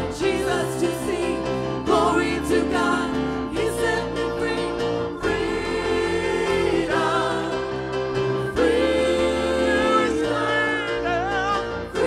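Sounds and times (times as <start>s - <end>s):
choir singing gospel song: 0.0s - 12.0s
keyboard: 0.0s - 12.0s.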